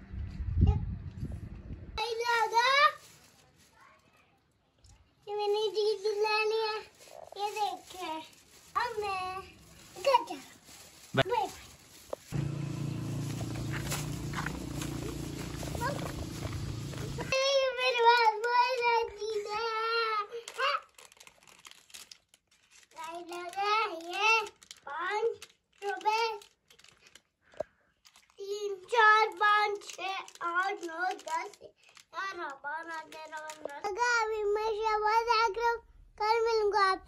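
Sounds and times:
steady low hum: 12.4 - 17.3.

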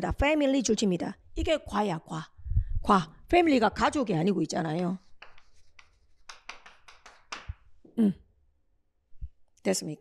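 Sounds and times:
chalk scratching on chalkboard: 4.7 - 7.6.

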